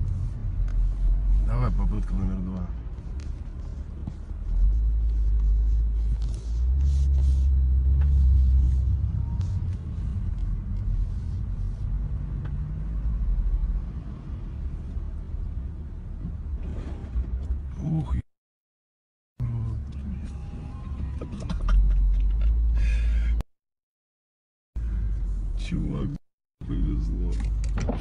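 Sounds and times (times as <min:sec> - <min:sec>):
car engine and tyres rumble: 0:00.0 - 0:18.2, 0:19.4 - 0:23.4, 0:24.8 - 0:28.0.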